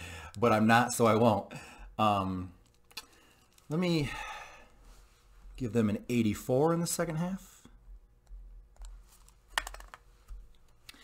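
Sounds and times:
small objects clicking on table: 9.5s - 10.0s.

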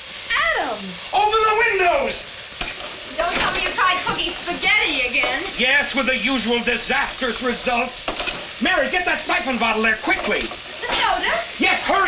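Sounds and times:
steaming pot hissing: 0.0s - 12.0s.

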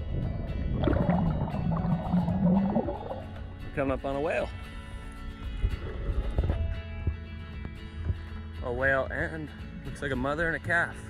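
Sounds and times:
low rumble: 0.0s - 3.8s
background music held tones: 0.0s - 11.0s.

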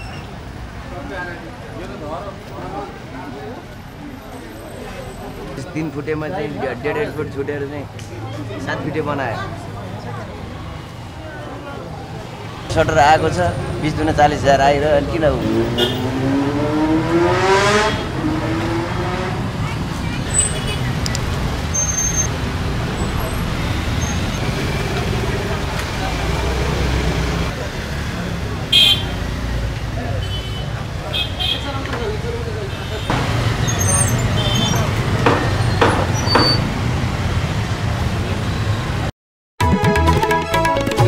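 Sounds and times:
road traffic rumble: 0.0s - 39.1s.

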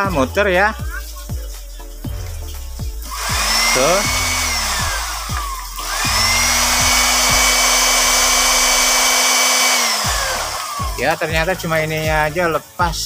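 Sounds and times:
blender motor whining: 3.1s - 11.0s.

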